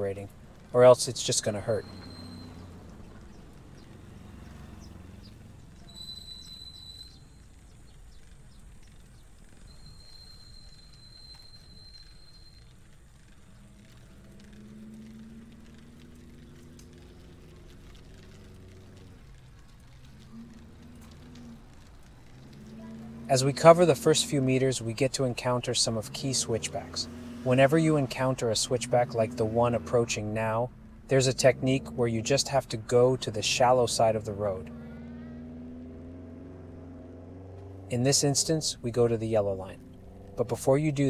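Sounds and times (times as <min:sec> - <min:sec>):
wind and road noise: 0:00.0 - 0:41.0
high steady whistles: 0:00.9 - 0:15.9.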